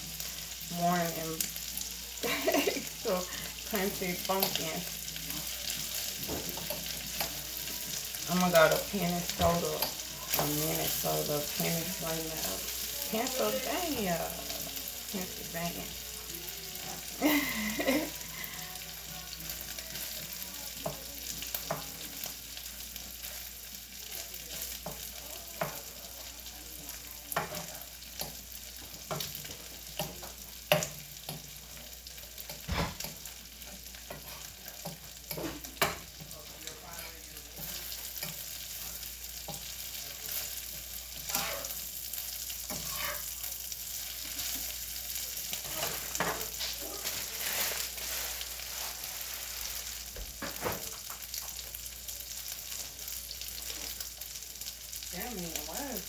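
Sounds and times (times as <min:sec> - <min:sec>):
food sizzling in a frying pan: 0:00.0 - 0:56.0
utensil scraping and clicking on pan: 0:37.0 - 0:43.5.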